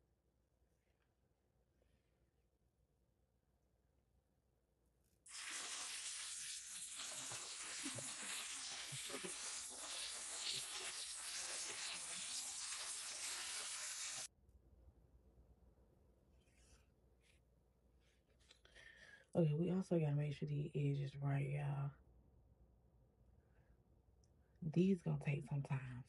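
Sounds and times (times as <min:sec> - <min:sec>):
steady hiss: 0:05.3 - 0:14.3.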